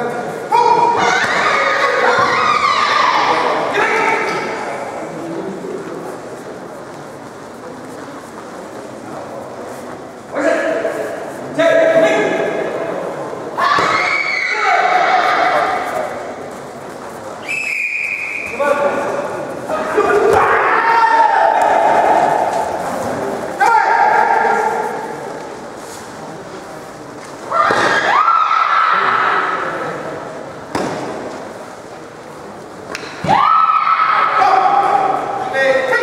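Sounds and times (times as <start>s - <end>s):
fighters shouting: 13.6s - 16.2s, 19.7s - 25.3s.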